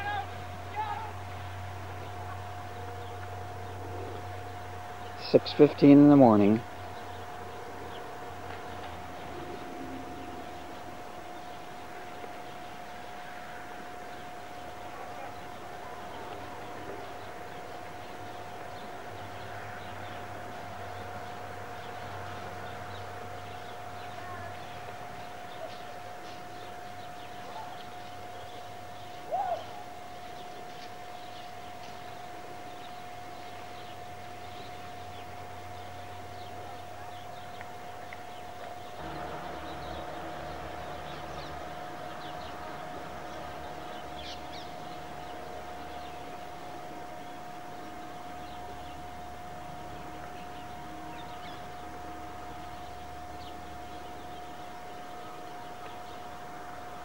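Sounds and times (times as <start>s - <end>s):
high-pitched whine: 0.0s - 57.0s
faint bird chirps: 6.7s - 46.6s.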